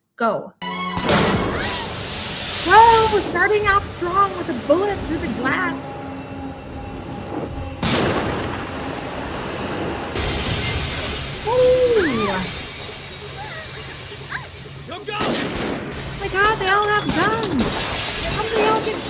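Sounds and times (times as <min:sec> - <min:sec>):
background music: 0:00.6 - 0:19.0
crash: 0:00.9 - 0:19.0
glass shattering: 0:10.2 - 0:19.0
person shouting: 0:11.4 - 0:12.5.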